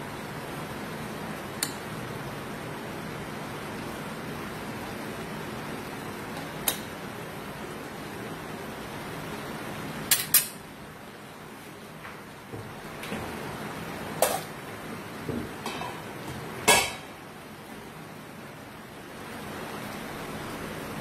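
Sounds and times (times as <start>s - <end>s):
food sizzling in a pan: 13.7s - 17.6s.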